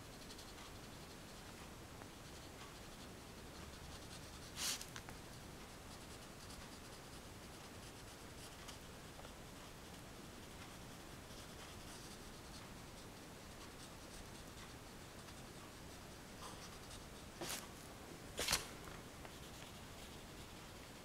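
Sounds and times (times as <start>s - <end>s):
pastel scratching on paper: 0.1s - 5.0s, 5.7s - 17.6s, 18.4s - 21.0s.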